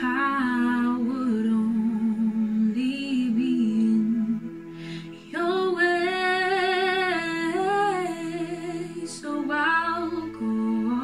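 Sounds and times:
woman singing sustained note: 0.0 - 11.0.

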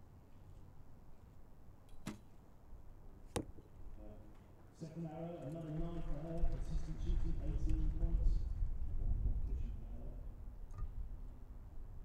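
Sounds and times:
wind buffeting microphone: 6.3 - 12.0.

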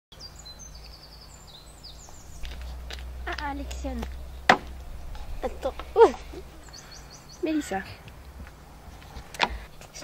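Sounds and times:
small birds chirping: 0.1 - 10.0
low outdoor rumble: 0.3 - 10.0.

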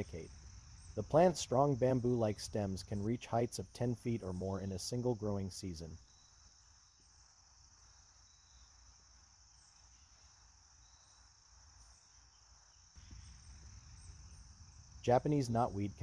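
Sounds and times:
faint high-pitched hiss: 0.0 - 16.0.

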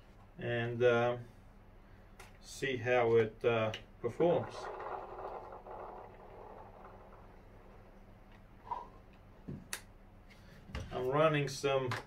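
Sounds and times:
gel balls pouring into magazine: 4.4 - 7.9.

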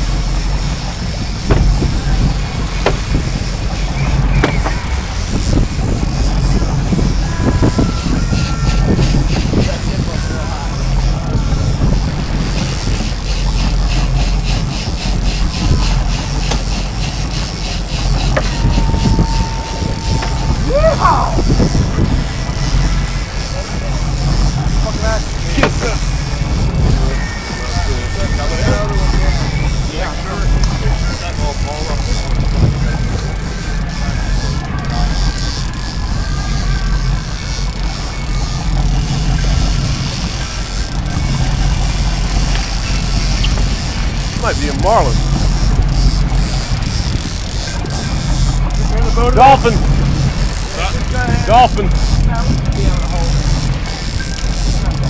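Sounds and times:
boat engines running: 0.0 - 55.0
water and wind rushing: 0.0 - 55.0
people calling out: 7.1 - 11.6, 18.2 - 24.1.

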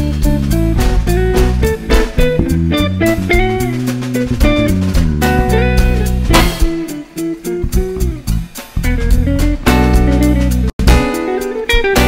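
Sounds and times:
bass: 0.0 - 12.0
drum kit: 0.0 - 12.0
plucked guitar lines: 0.0 - 12.0.

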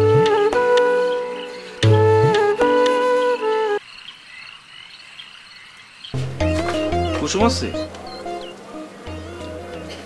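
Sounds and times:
background music: 0.0 - 3.8, 6.2 - 10.0
insects calling: 0.2 - 10.0
frogs calling: 3.4 - 8.6.

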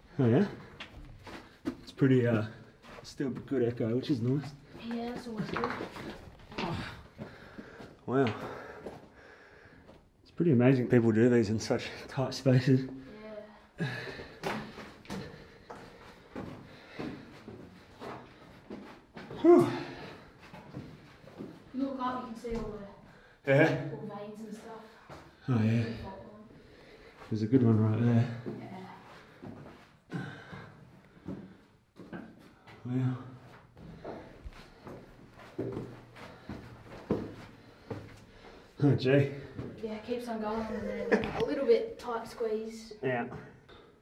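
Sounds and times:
footsteps on dirt and rock: 0.6 - 9.1, 33.7 - 38.7
man sighing: 19.3 - 20.2
man speaking: 23.4 - 23.9, 27.3 - 28.5.

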